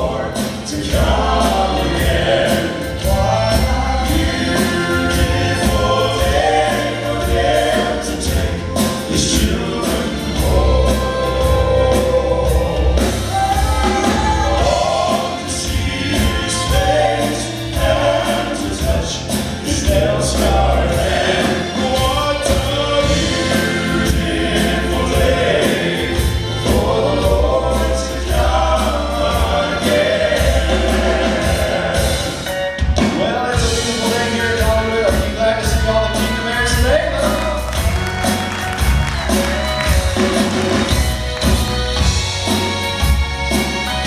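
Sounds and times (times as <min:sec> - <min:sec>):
bass line: 0:00.0 - 0:44.0
male quartet singing in harmony: 0:00.0 - 0:44.0.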